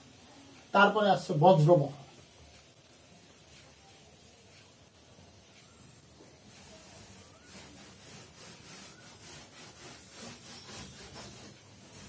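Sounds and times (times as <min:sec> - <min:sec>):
duster rubbing on chalkboard: 0:06.1 - 0:12.0.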